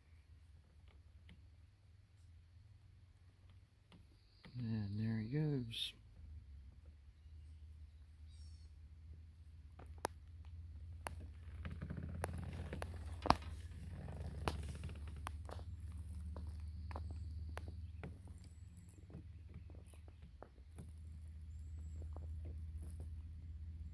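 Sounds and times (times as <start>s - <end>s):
low steady rumble: 0.0s - 23.9s.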